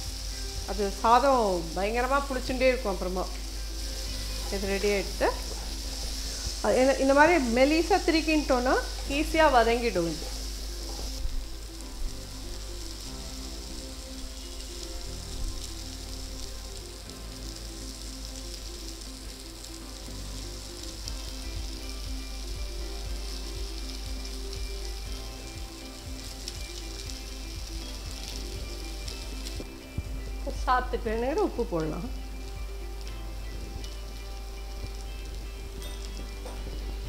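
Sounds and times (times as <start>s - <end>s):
food sizzling in oil: 0.0s - 37.0s
soft background music: 0.0s - 37.0s.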